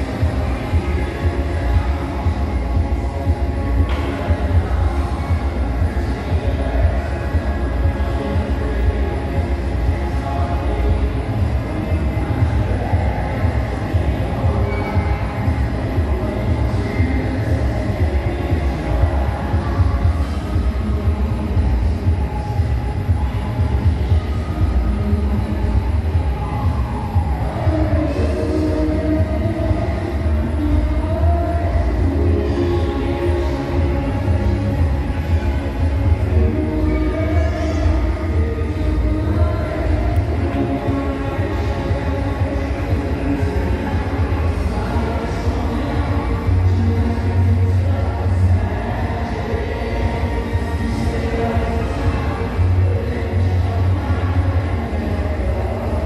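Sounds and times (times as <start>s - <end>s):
faint music from speaker: 0.0s - 56.0s.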